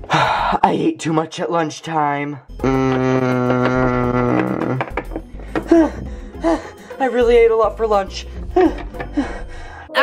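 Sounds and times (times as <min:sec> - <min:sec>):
breathy vocal sounds: 0:02.6 - 0:07.0.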